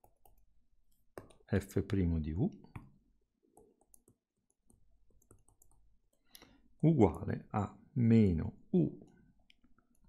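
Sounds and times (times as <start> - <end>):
stylus tapping on tablet screen: 0.0 - 2.0, 2.6 - 6.3.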